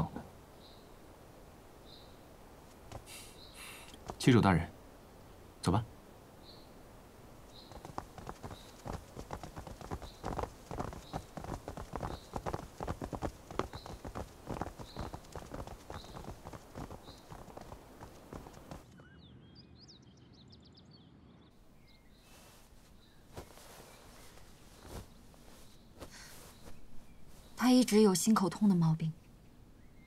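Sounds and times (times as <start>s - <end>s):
footsteps on stone: 2.7s - 3.2s, 4.0s - 4.3s, 7.5s - 18.9s, 23.2s - 27.6s.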